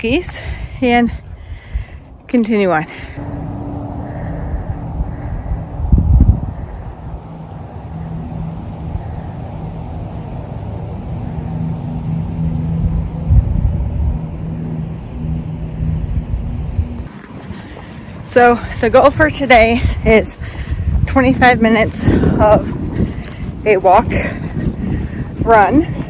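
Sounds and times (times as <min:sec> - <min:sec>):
engine hum: 0:00.0 - 0:26.0
wind buffeting microphone: 0:00.0 - 0:26.0
low rumble: 0:02.8 - 0:26.0.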